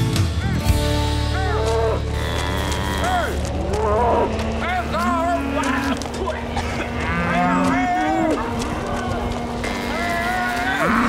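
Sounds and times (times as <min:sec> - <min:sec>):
cattle mooing: 0:01.2 - 0:11.0.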